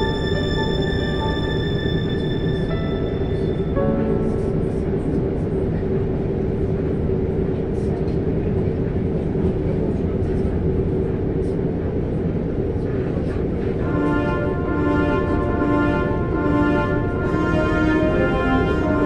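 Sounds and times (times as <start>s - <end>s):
constant hum: 0.0s - 19.0s.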